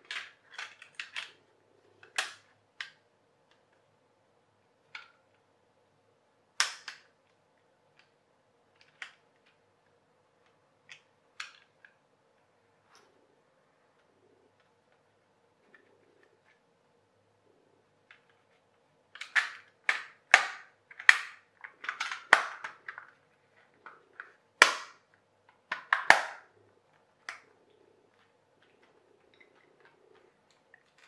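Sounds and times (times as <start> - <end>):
plastic parts clicking and snapping: 0.0 - 1.4, 2.0 - 3.8, 4.9 - 5.4, 6.6 - 12.0, 18.0 - 27.5, 28.1 - 31.0.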